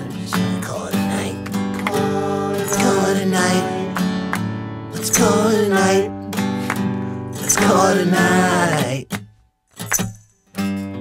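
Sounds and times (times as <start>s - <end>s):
person singing: 0.0s - 4.1s, 4.9s - 9.1s
acoustic guitar strumming chords: 0.0s - 11.0s.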